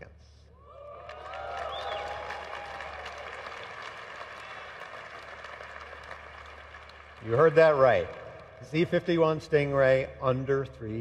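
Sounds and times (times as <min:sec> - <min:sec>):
whoops: 0:00.6 - 0:03.8
audience applauding and cheering: 0:00.6 - 0:09.1.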